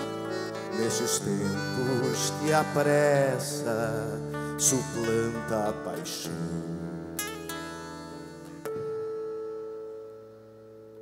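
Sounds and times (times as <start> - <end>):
acoustic guitar notes ringing: 0.0 - 11.0.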